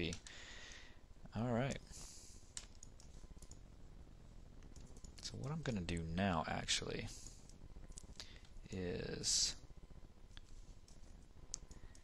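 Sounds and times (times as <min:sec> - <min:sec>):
computer mouse clicks: 0:02.5 - 0:03.6, 0:10.3 - 0:12.0.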